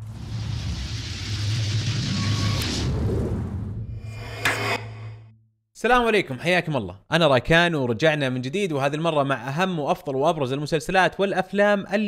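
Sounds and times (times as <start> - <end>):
low hum: 2.2 - 5.5.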